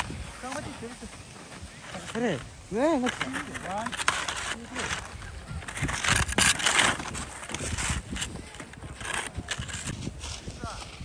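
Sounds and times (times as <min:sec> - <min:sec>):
crunching and scraping on snow: 0:00.0 - 0:11.0.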